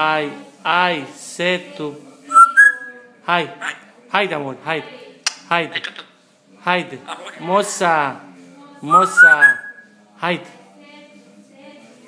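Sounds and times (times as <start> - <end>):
voice-like parrot call: 2.3 - 3.0
parrot whistling: 2.3 - 3.1, 8.9 - 9.9.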